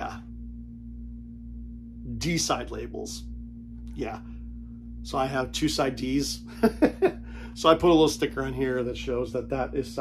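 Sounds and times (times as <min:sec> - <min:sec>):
steady background hum: 0:00.0 - 0:10.0
person speaking: 0:03.9 - 0:04.3, 0:05.0 - 0:10.0.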